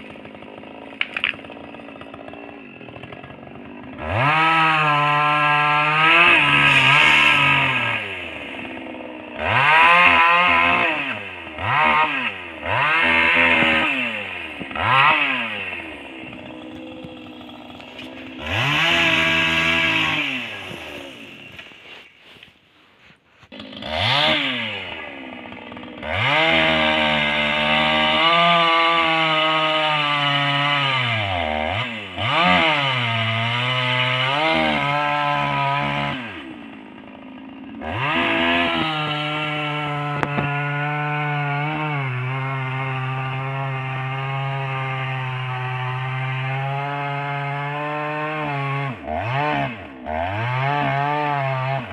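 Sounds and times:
chainsaw cutting log: 0:00.0 - 0:51.9
chainsaw revving and idling: 0:00.0 - 0:51.9.

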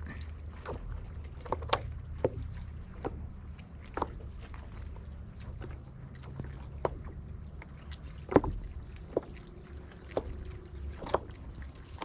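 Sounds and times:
knocks and splashes: 0:00.0 - 0:12.0
steady low rumble: 0:00.0 - 0:12.0
water lapping against hull: 0:00.0 - 0:12.0.

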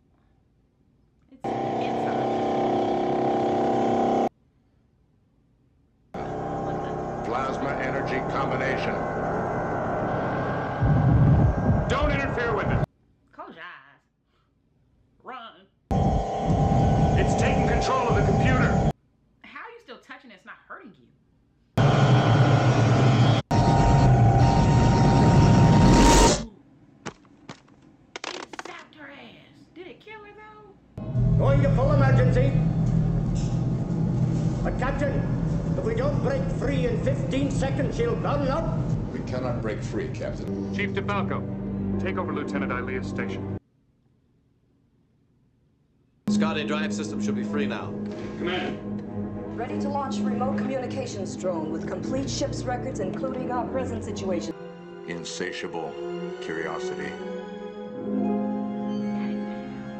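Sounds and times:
loud steady drone: 0:01.4 - 0:04.3, 0:06.2 - 0:12.8, 0:15.9 - 0:18.9, 0:21.8 - 0:26.5, 0:31.0 - 0:40.7
sound with shifting pitches: 0:06.2 - 0:12.8.

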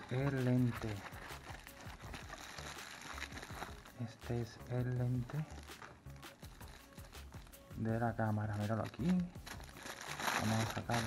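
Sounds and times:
bubble wrap crinkling and crackling: 0:00.0 - 0:11.0.

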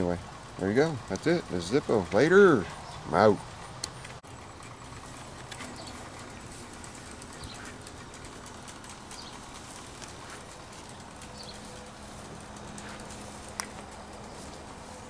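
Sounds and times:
outdoor background hiss: 0:00.0 - 0:15.0.

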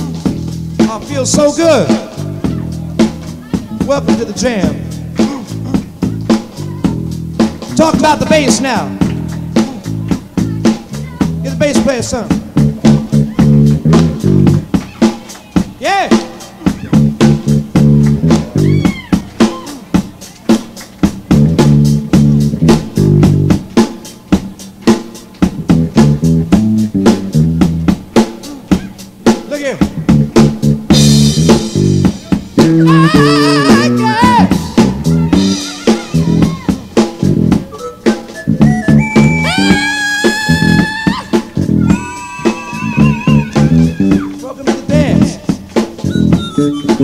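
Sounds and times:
steady drum beat: 0:00.0 - 0:47.0
electric bass solo: 0:16.8 - 0:18.9, 0:38.4 - 0:44.3
bending guitar or keys notes: 0:37.4 - 0:44.4, 0:46.0 - 0:47.0.

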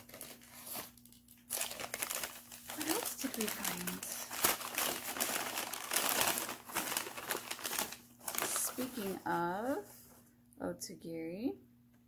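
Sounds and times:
packing material crinkling: 0:00.0 - 0:10.2.

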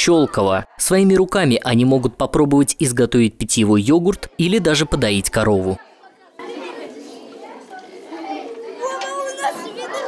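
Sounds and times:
children chattering: 0:00.0 - 0:02.6, 0:03.5 - 0:10.0.

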